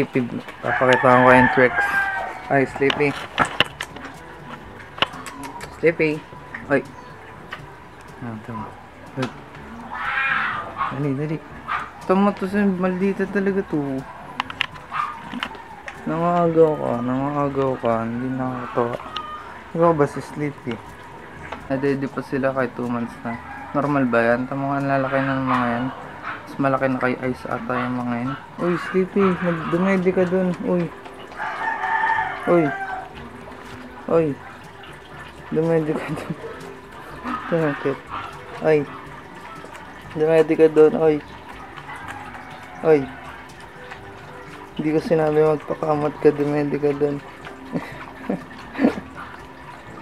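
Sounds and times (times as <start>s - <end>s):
rooster crowing: 0.6s - 3.0s, 18.0s - 19.8s, 23.3s - 26.0s, 31.3s - 33.5s, 41.8s - 43.9s
puppy whining: 0.6s - 12.2s, 12.9s - 20.2s, 27.5s - 40.2s, 41.2s - 44.8s.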